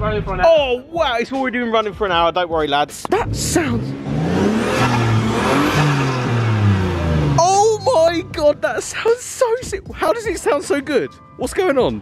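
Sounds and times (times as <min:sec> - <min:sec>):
man talking: 0:00.0 - 0:04.0, 0:07.4 - 0:12.0
car engine revving: 0:03.0 - 0:08.9.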